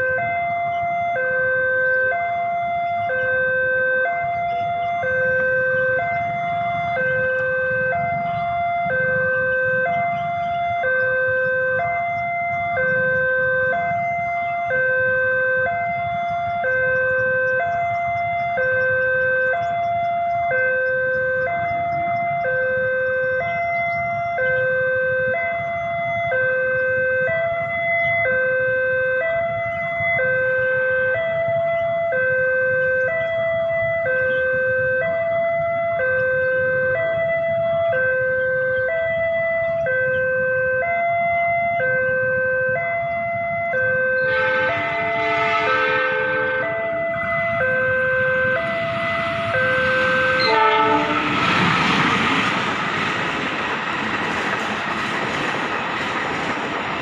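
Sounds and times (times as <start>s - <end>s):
level crossing two-tone alarm: 0.0s - 51.4s
locomotive horn: 0.0s - 51.8s
train rumble: 42.7s - 57.0s.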